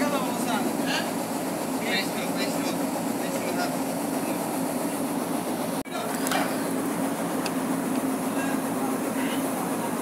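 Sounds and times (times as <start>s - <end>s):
ship machinery drone: 0.0s - 10.0s.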